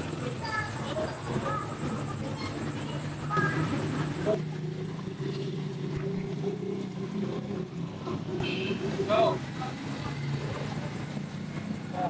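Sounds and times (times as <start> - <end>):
faint voices: 0.0 - 6.3
machine humming: 0.0 - 11.9.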